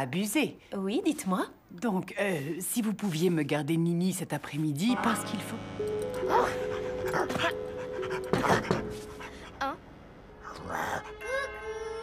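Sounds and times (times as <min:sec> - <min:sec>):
background music with held notes: 0:04.8 - 0:12.0.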